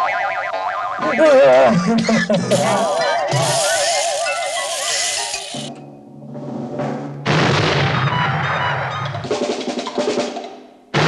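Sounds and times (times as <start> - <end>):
rattling hiss: 2.4 - 5.8.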